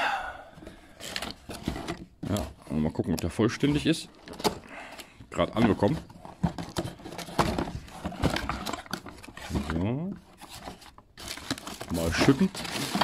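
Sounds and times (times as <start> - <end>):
packing paper crinkling: 5.6 - 13.0.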